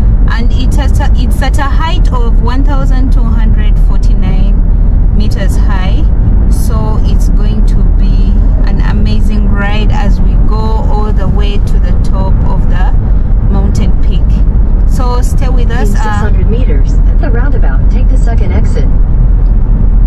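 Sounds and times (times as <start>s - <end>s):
road and engine rumble in car: 0.0s - 20.0s
person talking: 0.3s - 4.6s, 5.2s - 18.9s.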